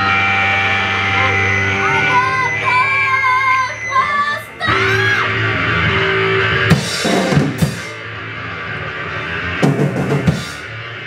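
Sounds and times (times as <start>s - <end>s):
distorted bass and synth drone: 0.0s - 11.0s
drum hits: 6.7s - 8.0s, 9.6s - 10.6s.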